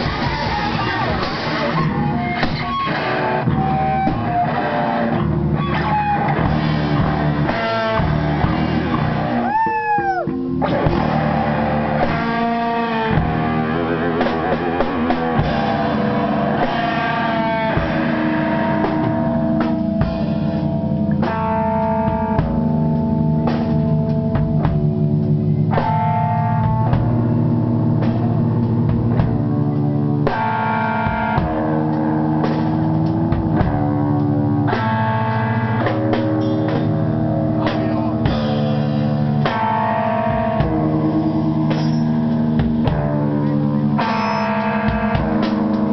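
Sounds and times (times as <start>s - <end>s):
drum kit hits: 0.0s - 45.9s
held guitar chords: 0.0s - 45.9s.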